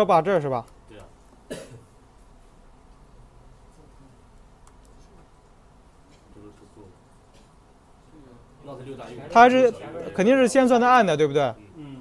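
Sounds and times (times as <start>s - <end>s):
person coughing: 1.5s - 1.9s.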